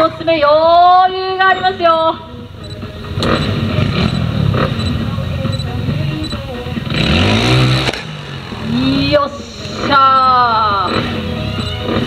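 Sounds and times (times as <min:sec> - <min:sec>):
motorcycle engine revving: 0:00.0 - 0:12.0.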